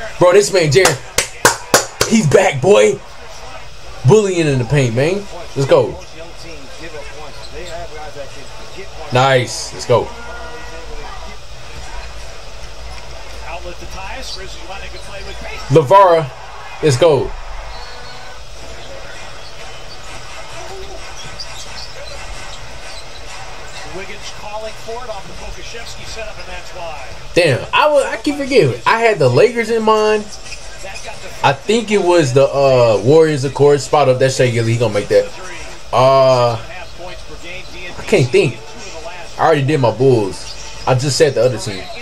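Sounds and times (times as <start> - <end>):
arena crowd noise: 0.0 - 42.0
commentator talking: 2.0 - 3.0, 13.6 - 17.4, 24.0 - 30.4, 31.2 - 42.0.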